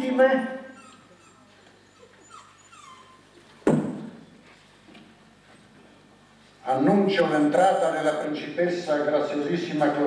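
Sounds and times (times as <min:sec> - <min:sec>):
small dog whimpering: 0:00.5 - 0:03.6.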